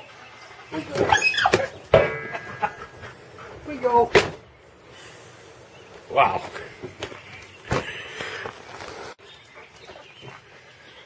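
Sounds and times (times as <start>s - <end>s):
dog squeaking and whining: 0.8s - 1.8s.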